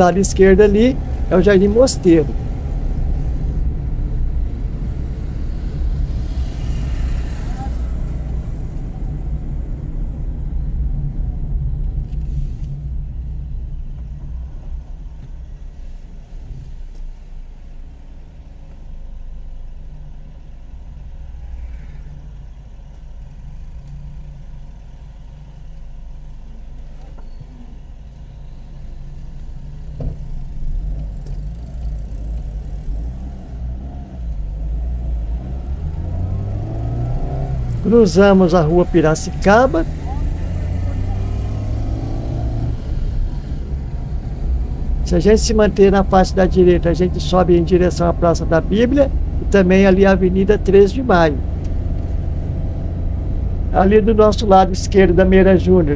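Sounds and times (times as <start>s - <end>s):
car engine and road rumble: 0.0s - 55.9s.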